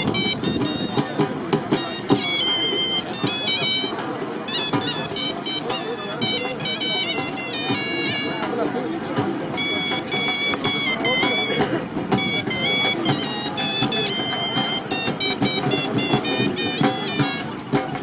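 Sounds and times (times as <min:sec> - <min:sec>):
crowd talking: 0:00.0 - 0:18.0
shrill reed pipe melody: 0:00.0 - 0:18.0.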